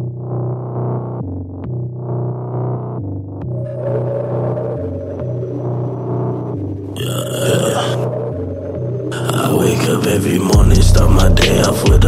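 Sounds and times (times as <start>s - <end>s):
trap beat bass and synth: 9.1s - 12.0s.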